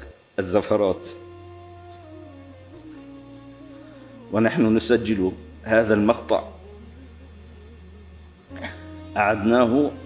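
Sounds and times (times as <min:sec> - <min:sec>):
low electrical hum: 0:00.0 - 0:10.0
faint wavering tone: 0:00.7 - 0:10.0.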